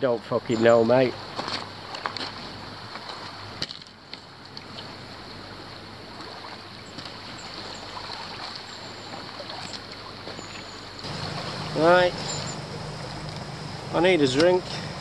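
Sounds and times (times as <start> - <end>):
wind: 0.0 - 15.0
small waves lapping: 1.0 - 15.0.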